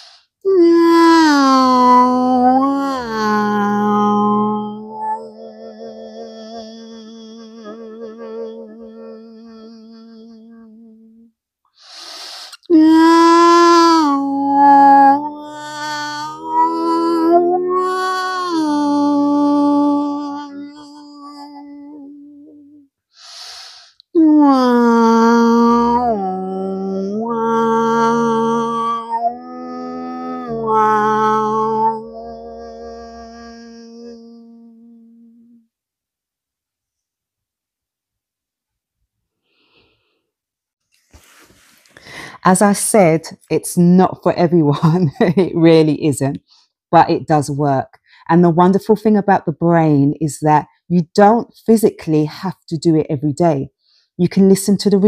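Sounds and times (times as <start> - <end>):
woman holding a vocal tone: 0.0 - 11.3, 11.9 - 23.5, 24.2 - 35.5
woman breathing in: 11.8 - 12.6, 23.2 - 24.0, 39.4 - 40.3, 41.2 - 42.4
woman toning held note: 29.7 - 33.7.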